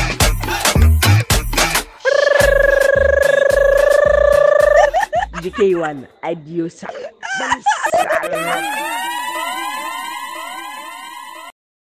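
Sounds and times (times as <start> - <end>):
electronic siren sound effect: 2.1 - 4.9, 8.2 - 11.6
person speaking: 2.1 - 9.0.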